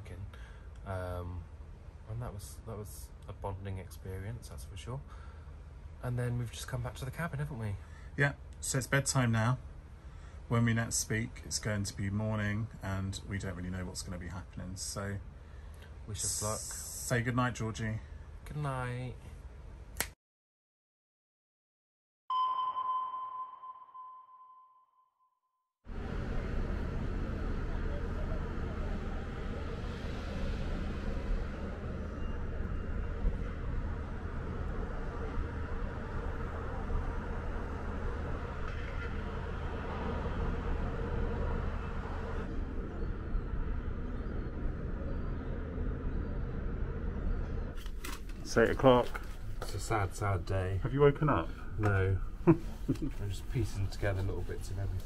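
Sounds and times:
low hum and hiss: 0.0 - 20.0, 25.9 - 55.0
electronic bell-like ping: 22.3 - 25.4.

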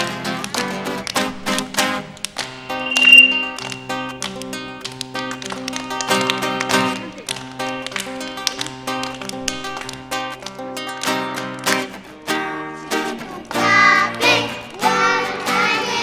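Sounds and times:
acoustic guitar strumming: 0.0 - 16.0
children hand clapping: 0.0 - 16.0.

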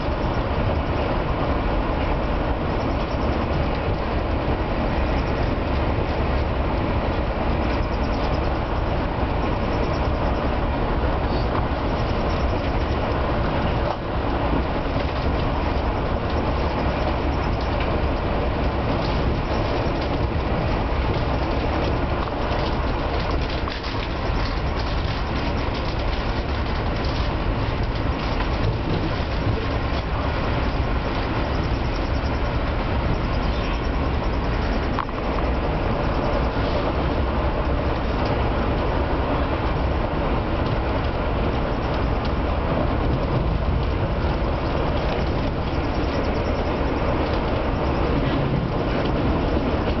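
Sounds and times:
train wheels rumbling on rail: 0.0 - 50.0.

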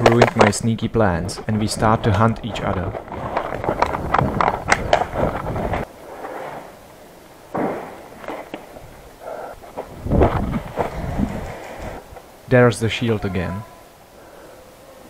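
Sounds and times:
rustling leaves and branches: 0.0 - 15.0
branches snapping: 2.4 - 5.9.

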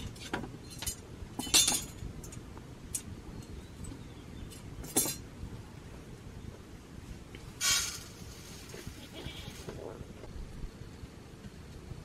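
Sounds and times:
goat bleating faintly: 8.8 - 9.9.

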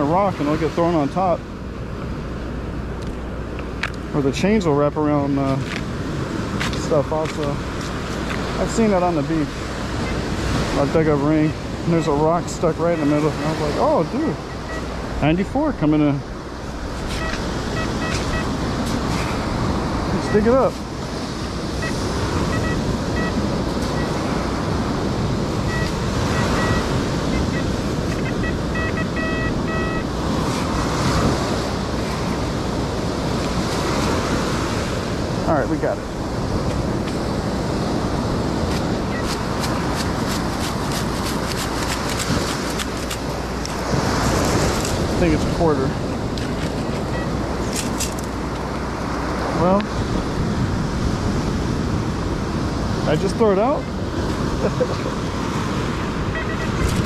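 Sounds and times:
surf washing up beach: 0.0 - 57.0
wind buffeting microphone: 5.4 - 57.0
metal detector beeps: 12.8 - 15.0, 17.1 - 18.6, 20.2 - 20.5, 21.8 - 24.3, 25.6 - 30.1, 38.7 - 43.2, 46.9 - 47.9, 56.3 - 57.0.

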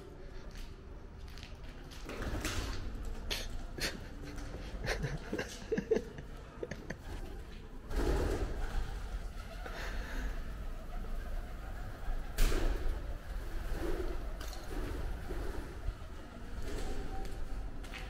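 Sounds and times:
pigeons cooing: 7.0 - 17.7.

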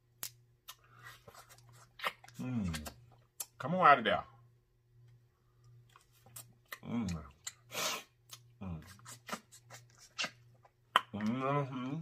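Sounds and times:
mouth smacks: 0.2 - 3.6, 6.3 - 12.0
person humming: 11.1 - 12.0.

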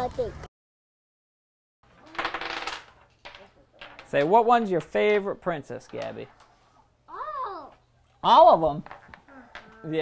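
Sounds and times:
small hard objects clattering on table: 2.0 - 4.2.

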